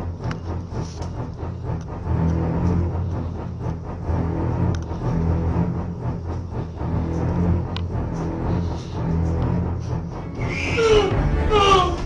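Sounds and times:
ominous horror background music: 0.0 - 12.0.

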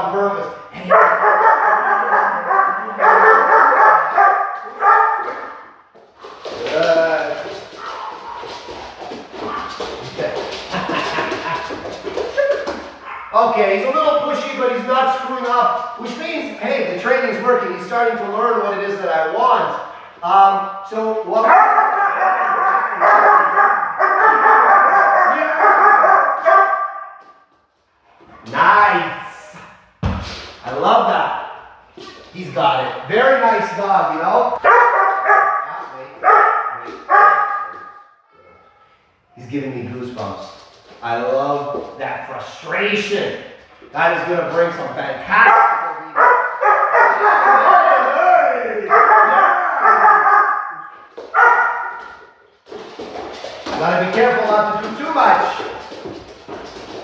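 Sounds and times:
dog barking: 0.8 - 5.6, 21.5 - 27.2, 34.6 - 38.1, 45.4 - 47.8, 48.9 - 52.2
paws tapping on laminate floor: 0.9 - 13.3, 34.6 - 38.0, 49.8 - 57.0
thump: 30.0 - 30.6.

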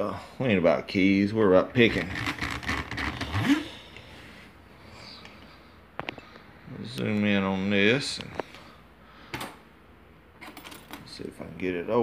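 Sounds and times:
faint handling noise: 1.8 - 9.7.

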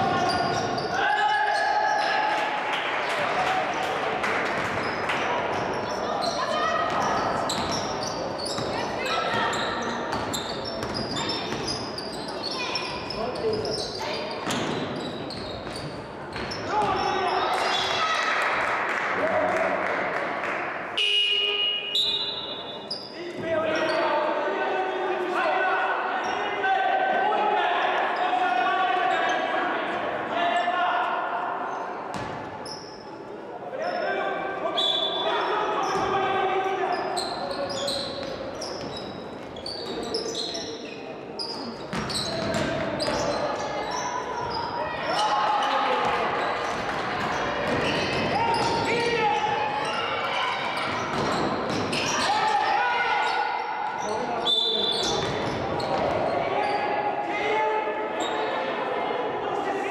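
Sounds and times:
sneakers squeaking: 0.0 - 2.2, 4.6 - 18.2, 21.0 - 24.2, 31.7 - 36.2, 36.8 - 57.1, 58.1 - 58.7
basketball bouncing: 41.9 - 43.2.

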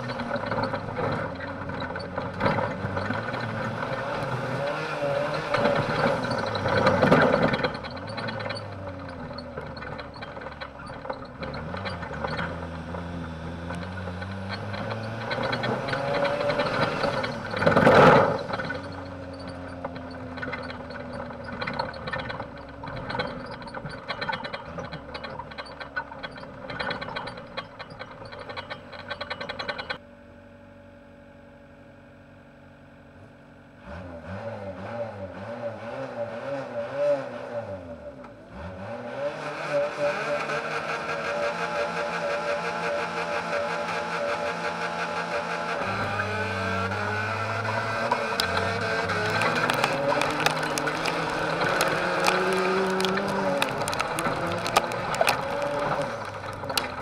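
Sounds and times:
knocks and clatter: 0.0 - 30.0, 47.1 - 57.0
race car engine: 0.0 - 30.8, 31.9 - 57.0.

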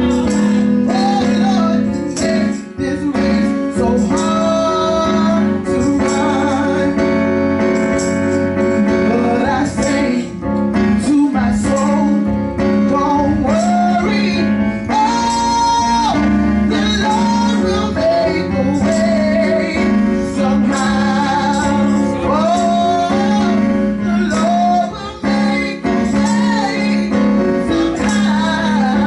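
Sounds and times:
woman singing into a microphone: 0.0 - 7.1, 9.1 - 10.4, 12.9 - 29.0
held keyboard chords: 0.0 - 29.0.

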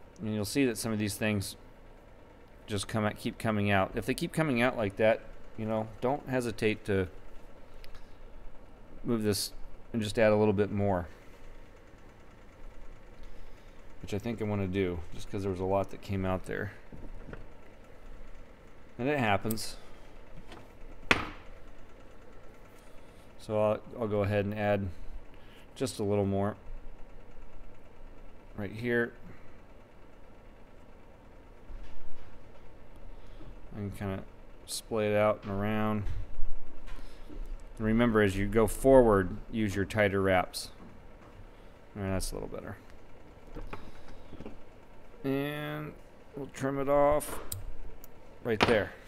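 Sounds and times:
sharp knock: 21.1 - 21.4.

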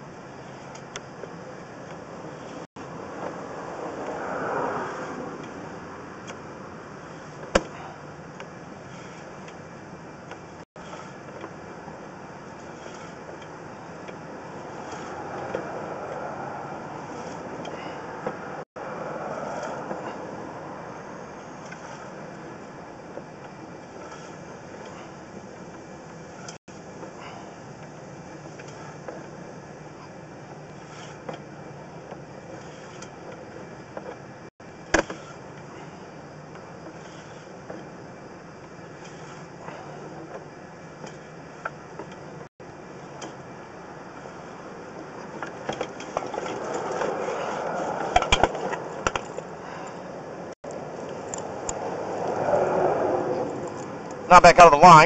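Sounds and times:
push rod scraping in pipe: 8.8 - 9.4, 10.8 - 11.5, 12.6 - 13.3, 14.6 - 15.8, 17.0 - 17.8, 21.5 - 22.2, 23.9 - 25.2, 30.7 - 31.4, 32.5 - 33.2, 35.0 - 35.4, 36.8 - 37.9, 38.9 - 40.2.

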